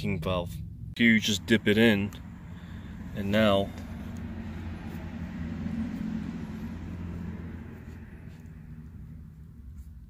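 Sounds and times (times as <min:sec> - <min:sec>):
air conditioning unit humming: 0:00.0 - 0:10.0.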